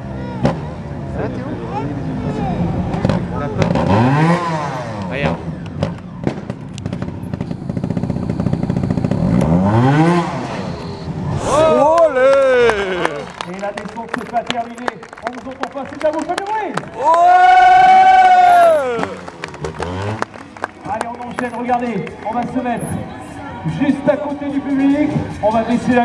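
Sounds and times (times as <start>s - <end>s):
motorcycle engine revving: 0.0s - 12.0s, 17.8s - 22.0s
sharp clicks and pops: 5.0s - 9.6s
long drawn-out shout: 11.3s - 13.5s, 16.9s - 19.6s
person exclaiming: 11.4s - 13.4s, 17.0s - 19.2s.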